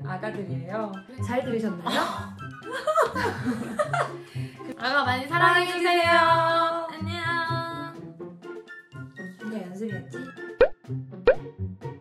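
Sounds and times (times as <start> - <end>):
background music: 0.0 - 12.0
cartoon plop sound effects: 10.6 - 11.5.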